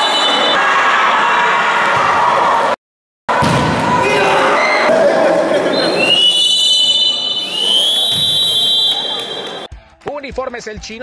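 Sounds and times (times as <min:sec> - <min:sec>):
referee's whistle blasts: 0:00.0 - 0:00.6, 0:05.7 - 0:09.7
crowd shouting: 0:00.0 - 0:09.7.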